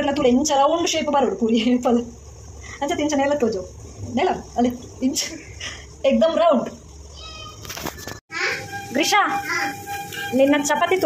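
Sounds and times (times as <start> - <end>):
young child's voice: 8.3 - 8.6.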